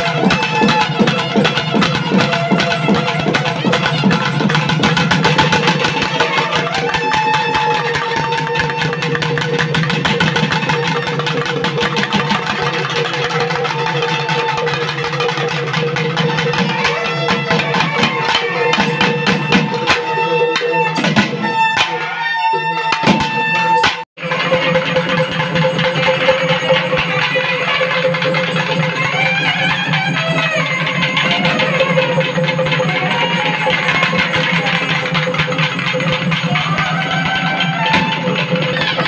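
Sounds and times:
wavering melody: 23.5 - 39.0
fast dense drumming: 24.2 - 39.0.

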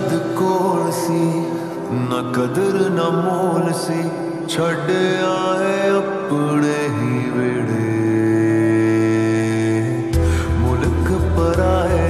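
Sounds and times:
slowed reverb-heavy pop ballad: 0.0 - 12.0.

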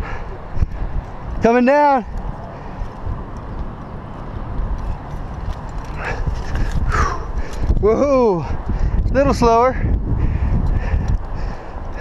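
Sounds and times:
wind rumble on microphone: 0.0 - 12.0
climbing shoes tapping on rock: 2.1 - 8.1.

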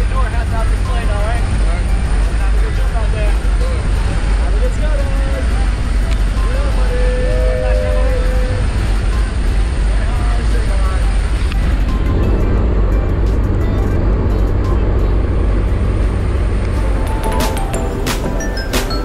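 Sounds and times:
plane engine and propeller drone: 7.6 - 18.7.

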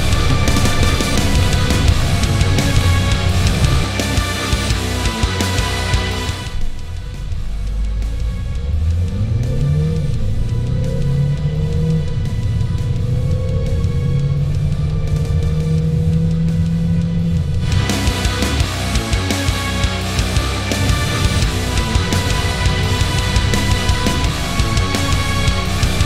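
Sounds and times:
diesel engine accelerating: 0.0 - 26.0
heavy rock music: 0.0 - 26.0.

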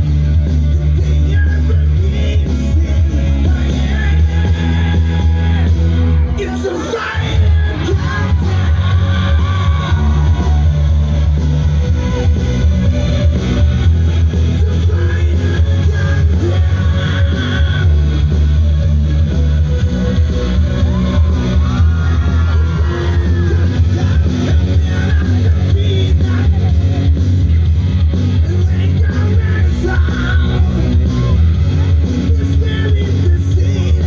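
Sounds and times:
heavy bass: 0.0 - 34.0
live rock band playing: 0.0 - 34.0.

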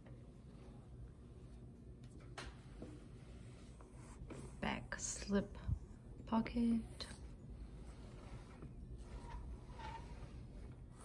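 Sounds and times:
woman speaking: 4.6 - 7.2.

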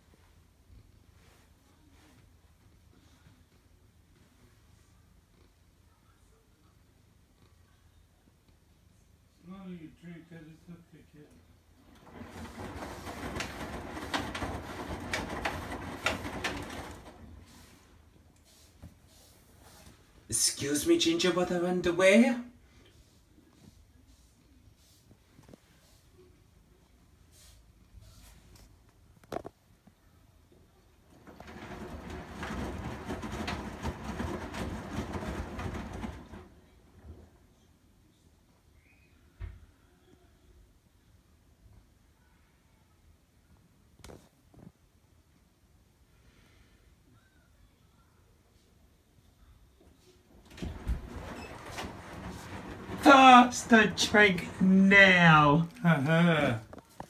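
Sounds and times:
washing machine drum turning: 11.9 - 17.7, 31.1 - 37.3, 50.4 - 56.7.

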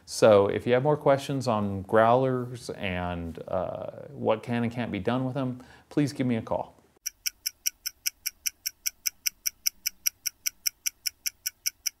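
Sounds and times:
stopwatch ticking: 7.0 - 12.0.

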